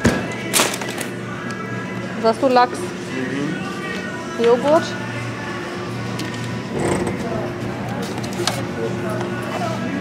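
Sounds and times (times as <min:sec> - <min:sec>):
background music: 0:01.0 - 0:07.8
steady low hum: 0:06.6 - 0:07.9
indistinct voices: 0:06.7 - 0:07.9.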